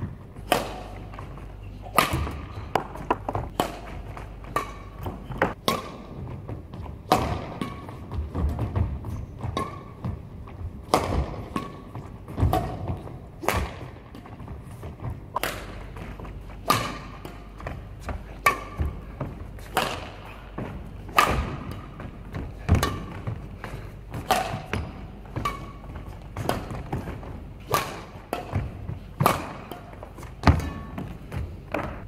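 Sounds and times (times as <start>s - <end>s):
racket striking shuttlecock: 0.4s - 14.3s, 15.3s - 32.0s.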